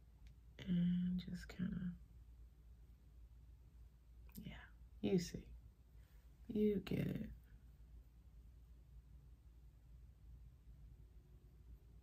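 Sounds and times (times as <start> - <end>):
low room hum: 0.0 - 12.0
softly spoken word: 0.6 - 2.0, 6.5 - 7.5.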